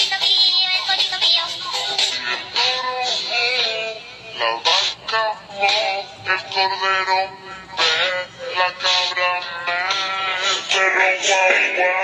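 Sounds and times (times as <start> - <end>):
music: 0.0 - 12.0
synthetic voice singing: 0.0 - 12.0.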